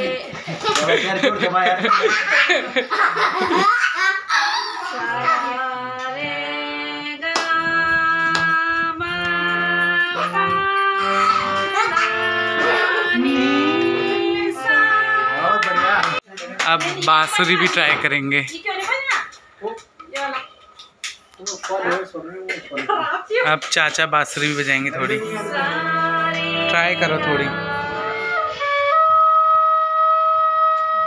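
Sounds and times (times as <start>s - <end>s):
people laughing: 0.2s - 5.1s, 11.1s - 14.5s
harmonium playing slow tune: 7.6s - 16.2s, 24.9s - 31.0s.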